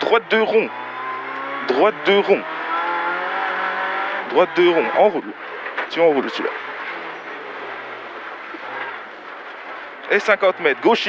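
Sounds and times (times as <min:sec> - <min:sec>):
car engine: 0:00.0 - 0:10.4
tyre and road noise: 0:00.0 - 0:11.0.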